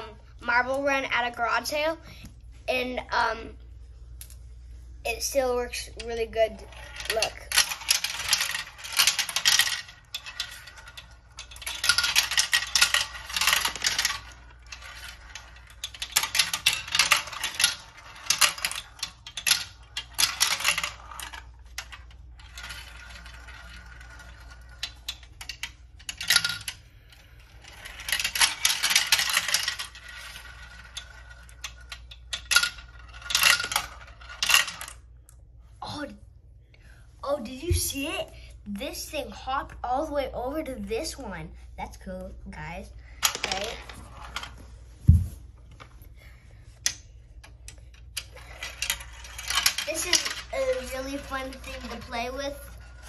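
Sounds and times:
marbles clattering down plastic run: 5.7s - 35.0s, 43.2s - 44.6s, 47.8s - 53.0s.

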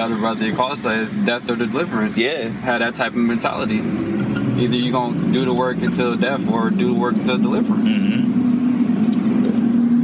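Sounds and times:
car hum from inside cabin: 0.0s - 10.0s.

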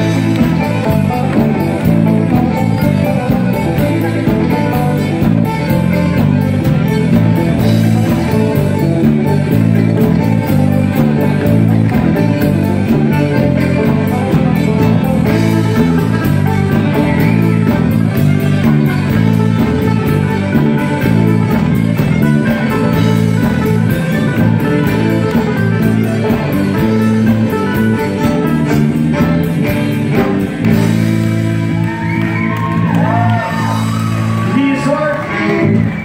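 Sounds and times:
fiddle melody: 0.0s - 32.2s
folk-rock band playing: 0.0s - 36.0s.

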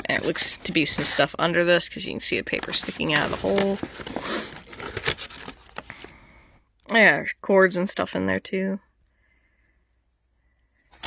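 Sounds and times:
cardboard and paper rustling: 0.0s - 1.4s, 2.0s - 6.2s.

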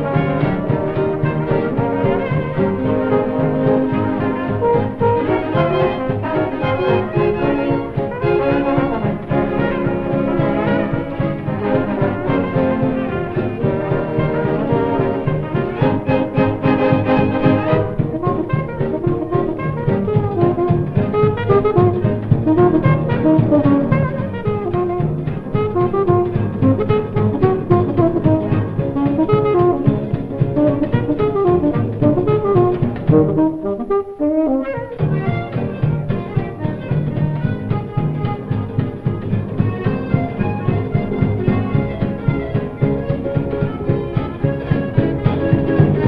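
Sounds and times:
dance band playing jazz: 0.0s - 46.0s.

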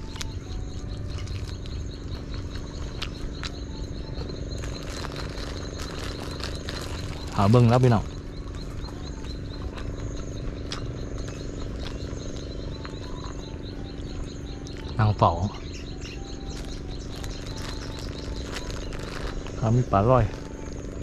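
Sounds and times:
insects chirping: 0.0s - 21.0s
steady low hum: 0.0s - 21.0s.

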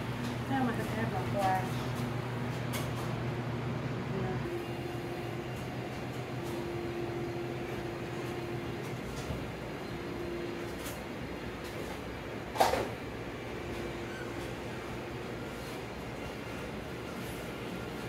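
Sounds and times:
low mechanical room hum: 0.0s - 18.0s.

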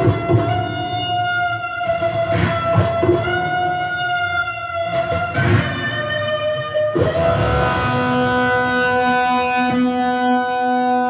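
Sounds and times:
electric guitar chord ringing: 0.0s - 11.0s.

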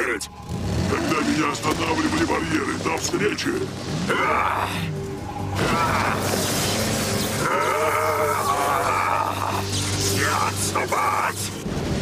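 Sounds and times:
background music: 0.0s - 12.0s
electric crackling: 0.5s - 12.0s.

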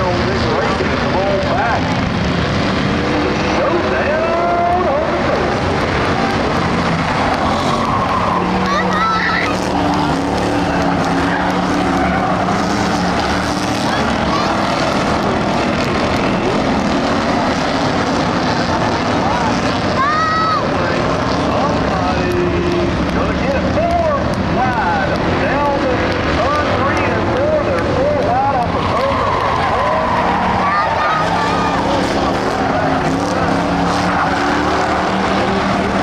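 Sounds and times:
racing car engines: 0.0s - 36.0s.

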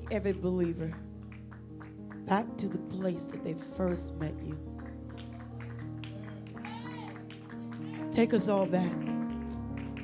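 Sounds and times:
soft sustained chord music: 0.0s - 10.0s.

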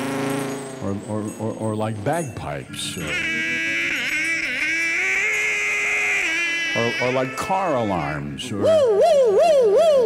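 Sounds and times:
man imitating bagpipes: 2.8s - 10.0s.

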